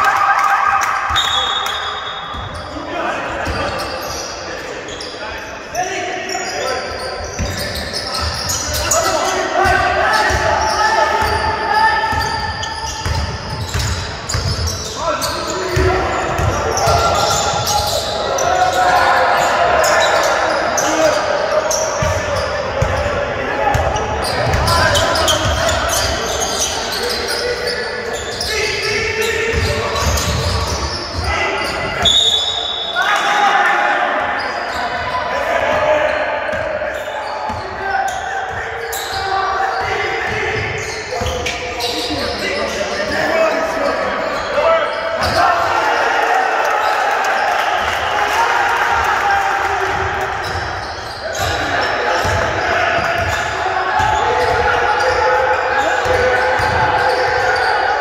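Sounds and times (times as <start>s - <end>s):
echoing voices: 0.0s - 58.0s
referee whistle blast: 1.1s - 2.4s, 32.0s - 33.0s
basketball bouncing: 13.0s - 14.7s.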